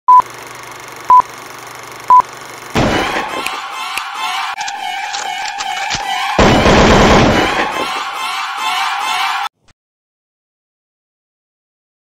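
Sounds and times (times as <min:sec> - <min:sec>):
loud hit and rushing noise: 0:02.8 - 0:03.7, 0:06.0 - 0:08.2.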